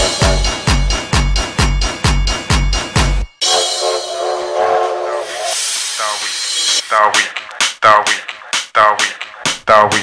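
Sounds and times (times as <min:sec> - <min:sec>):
hissing noise sweep: 0:04.8 - 0:07.3.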